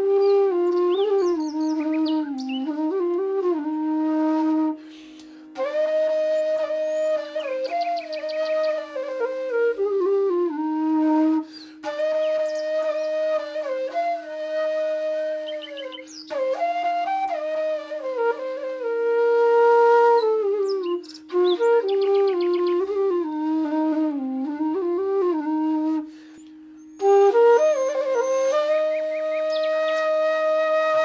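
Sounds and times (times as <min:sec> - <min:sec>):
flute playing slow melody: 0:00.0 - 0:31.0.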